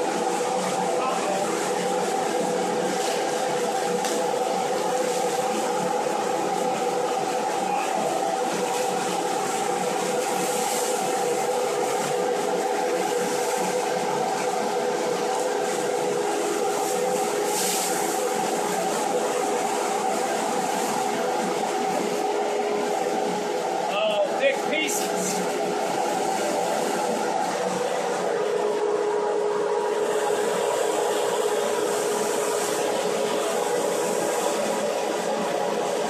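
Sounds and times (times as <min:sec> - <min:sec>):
electric blower running: 0:00.0 - 0:36.0.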